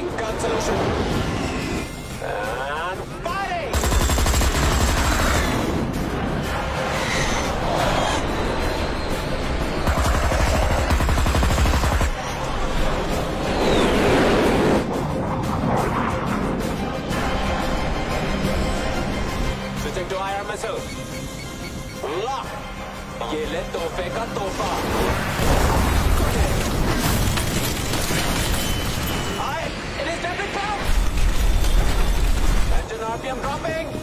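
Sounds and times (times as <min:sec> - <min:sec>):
dramatic music: 0:00.0 - 0:34.0.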